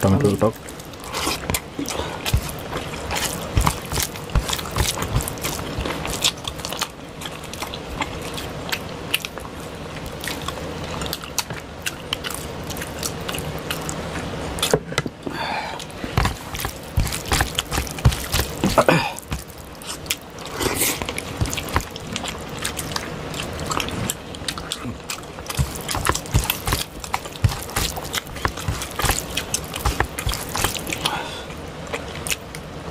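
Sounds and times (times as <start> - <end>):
mouths chewing: 0.0 - 14.8, 15.7 - 32.7
fingers mixing rice with curry: 0.5 - 14.0, 15.8 - 32.4.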